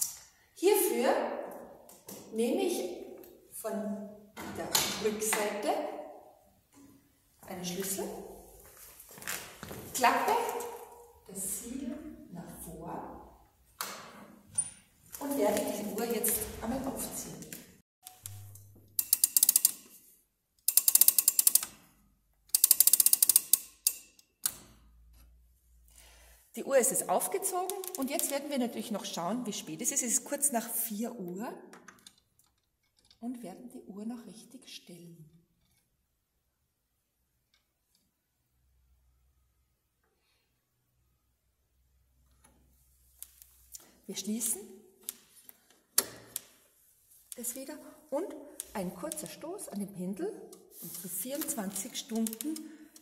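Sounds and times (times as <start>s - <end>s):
clock winding ratchet clicks: 18.9s - 19.9s, 20.6s - 21.8s, 22.5s - 24.3s.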